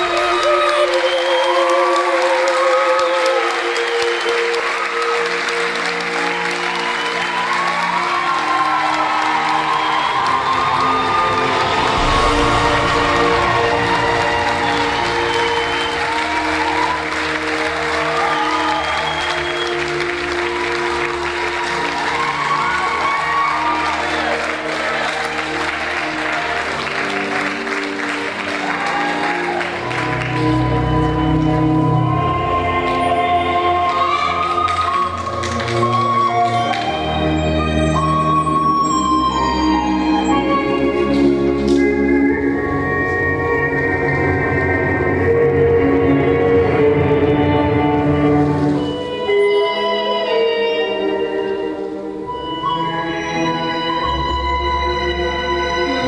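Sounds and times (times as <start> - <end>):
audience applauding: 0.0 - 45.0, 47.8 - 54.3
recorded music with held notes: 29.7 - 56.0.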